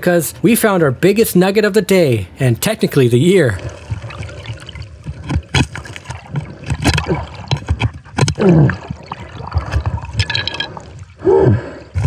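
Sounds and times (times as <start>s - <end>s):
underwater bubbling water: 3.5s - 12.0s
clicks and knocks against rock: 5.0s - 10.8s.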